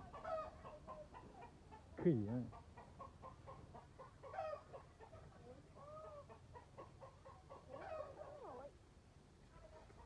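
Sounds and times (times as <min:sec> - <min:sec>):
chickens clucking: 0:00.0 - 0:08.8, 0:09.5 - 0:10.0.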